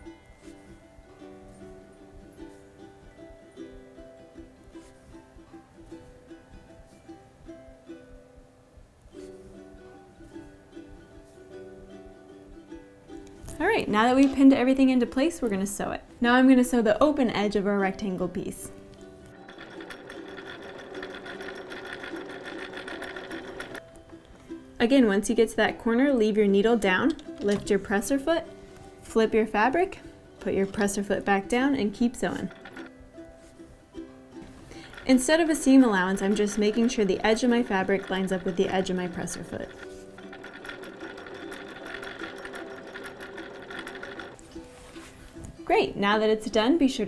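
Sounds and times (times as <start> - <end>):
electric sewing machine stitching: 19.3 - 23.8, 31.9 - 32.9, 34.7 - 44.5.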